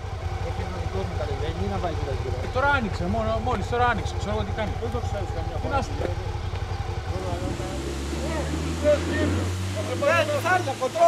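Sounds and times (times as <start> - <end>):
vehicle engine running: 0.0 - 11.0
voices: 0.0 - 11.0.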